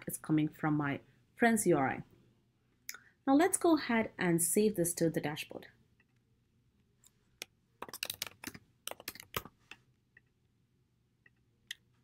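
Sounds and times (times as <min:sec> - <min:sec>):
computer keyboard typing: 0:07.8 - 0:09.5.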